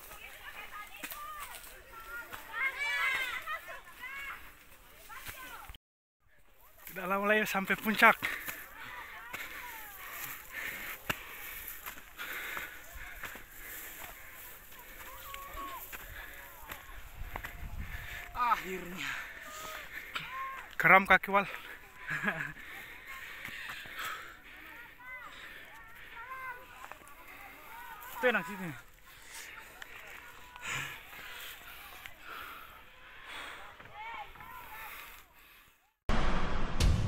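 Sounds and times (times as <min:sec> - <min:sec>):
footsteps on a path: 0:00.0 - 0:05.8, 0:06.4 - 0:35.6
faint voices: 0:08.4 - 0:20.8, 0:21.5 - 0:35.8.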